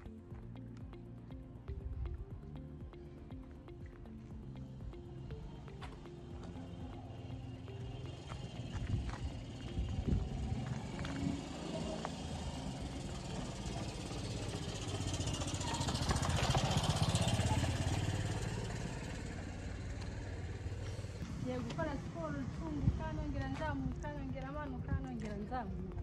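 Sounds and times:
motorcycle passing close by: 0:04.1 - 0:25.4.

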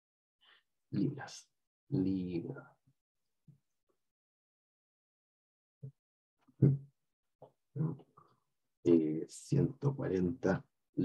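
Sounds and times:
man speaking: 0:01.0 - 0:02.6, 0:07.8 - 0:08.0, 0:08.9 - 0:10.6.

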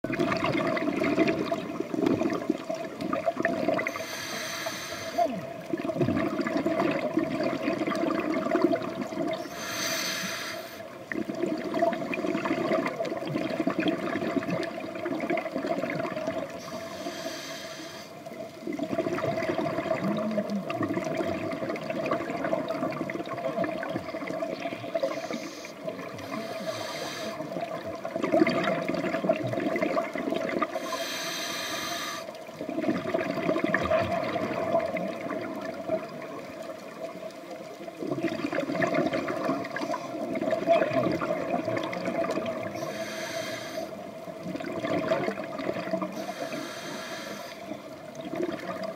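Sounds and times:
continuous watery rumble: 0:00.0 - 0:48.9.

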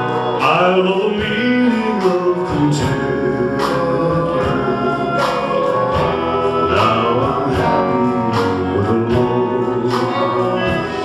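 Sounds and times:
backing vocals: 0:00.0 - 0:11.0
drum kit: 0:00.0 - 0:11.0
electric guitar: 0:00.0 - 0:11.0
keyboard: 0:00.0 - 0:11.0
man singing lead: 0:00.0 - 0:11.0.

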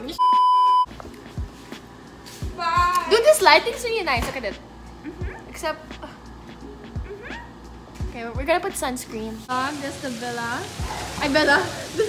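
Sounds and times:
censor bleep: 0:00.2 - 0:00.9.

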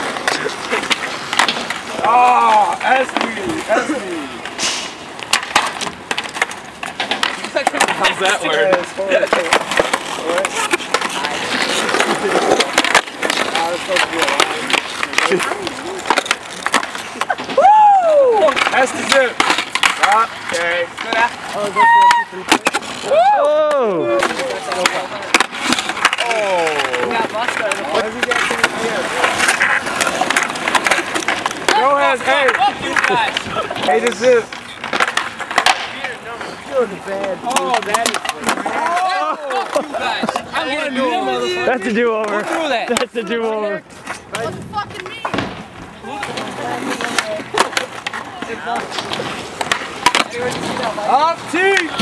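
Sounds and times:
skateboard clacks: 0:00.0 - 0:52.0
skateboard wheels rolling on concrete: 0:00.0 - 0:52.0
men laughing and hooting: 0:03.5 - 0:04.4, 0:17.0 - 0:18.6, 0:38.7 - 0:40.2.

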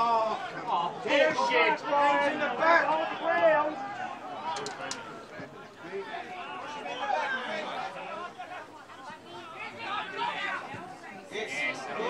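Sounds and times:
crowd voices calling and chattering: 0:00.0 - 0:12.0.

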